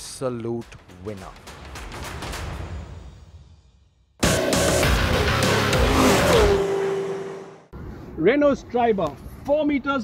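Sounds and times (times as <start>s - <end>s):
faint outdoor background: 2.6s - 10.0s.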